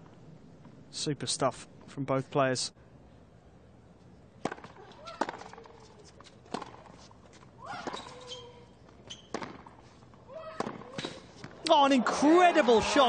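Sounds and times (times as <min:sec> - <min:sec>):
tennis ball struck by rackets: 0:04.4 - 0:05.8, 0:06.5 - 0:07.0, 0:09.3 - 0:09.8, 0:10.5 - 0:11.6.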